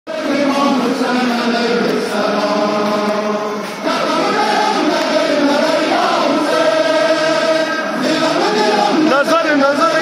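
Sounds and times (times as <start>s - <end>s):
men chanting a lament: 0.1s - 10.0s.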